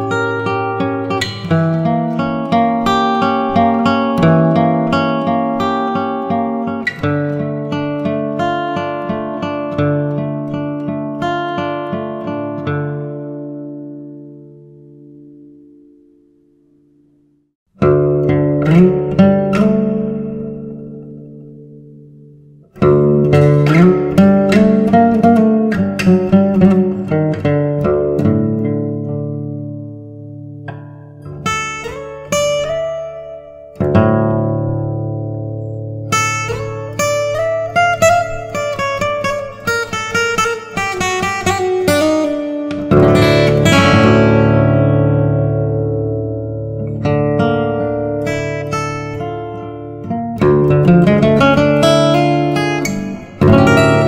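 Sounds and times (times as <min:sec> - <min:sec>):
fingerpicked acoustic guitar: 0:00.0 - 0:54.0.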